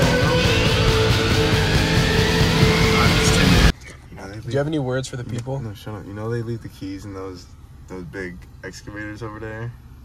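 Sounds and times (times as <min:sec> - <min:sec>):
distorted rock music: 0:00.0 - 0:03.7
low hum inside car cab: 0:03.0 - 0:10.0.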